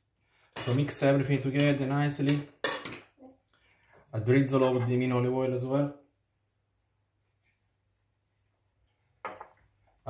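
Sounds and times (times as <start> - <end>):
kitchenware knock: 9.2 - 9.6.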